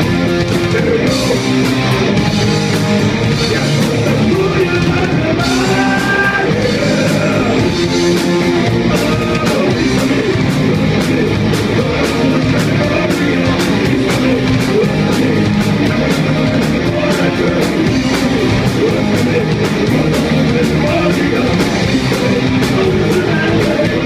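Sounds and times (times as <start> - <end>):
drum beat: 0.0 - 24.0
electric guitars: 0.0 - 24.0
person singing: 3.2 - 24.0.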